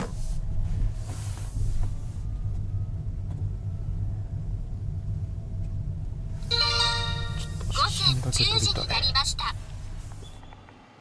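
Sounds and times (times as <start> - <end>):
minivan low rumble from cabin: 0.0 - 11.0.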